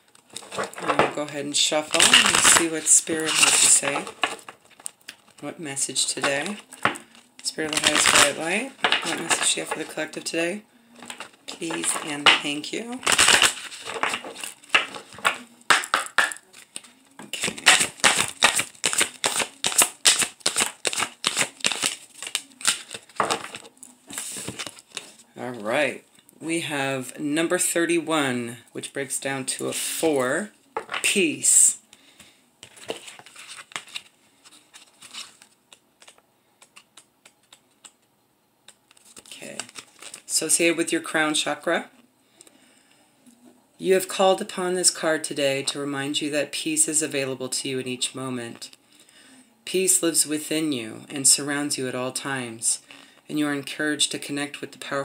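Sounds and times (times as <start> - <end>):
cards being shuffled: 0.1 - 5.4, 6.0 - 10.2, 11.0 - 25.2, 32.2 - 38.1, 38.7 - 40.5
paper rustling: 0.1 - 5.4, 6.0 - 10.1, 10.9 - 25.2, 32.2 - 38.0, 38.9 - 40.3
paper clicks and taps: 36.0 - 38.0.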